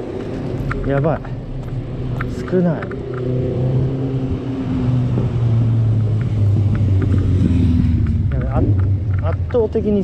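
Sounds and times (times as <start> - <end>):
road noise: 0.0 - 10.0
vehicle engine droning: 0.0 - 10.0.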